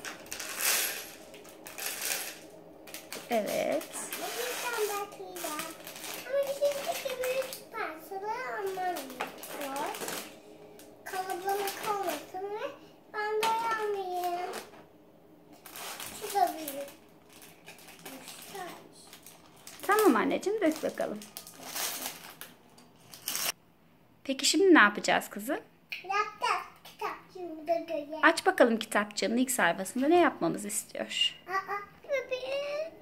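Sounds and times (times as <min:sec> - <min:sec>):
plastic bag rustling: 0:00.0 - 0:14.9, 0:15.5 - 0:23.6
young child's voice: 0:03.4 - 0:10.3, 0:11.1 - 0:14.7, 0:16.0 - 0:17.0, 0:18.0 - 0:19.2, 0:25.9 - 0:28.3, 0:31.4 - 0:33.0.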